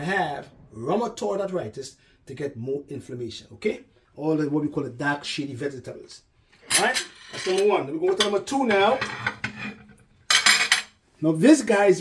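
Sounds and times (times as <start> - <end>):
plate scraping: 6.6 - 10.9.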